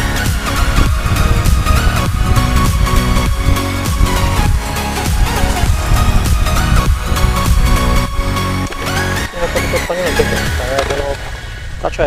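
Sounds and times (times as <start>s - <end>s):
electronic dance music: 0.0s - 11.2s.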